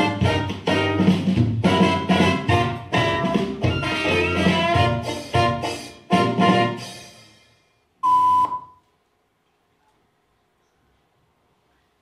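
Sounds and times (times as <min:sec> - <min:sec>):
swing band brass: 0:00.0 - 0:07.3
loud electronic beep: 0:08.0 - 0:08.8.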